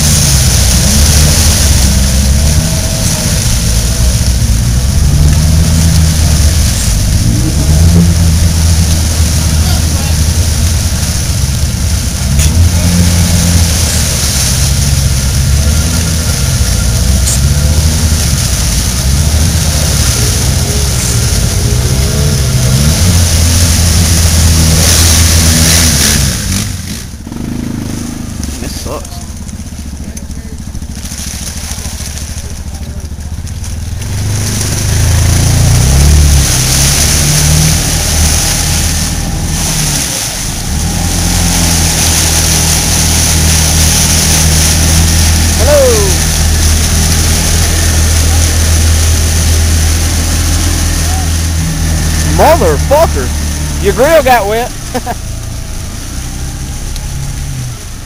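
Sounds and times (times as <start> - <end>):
off-road engines revving in mud: 0.0 - 58.0.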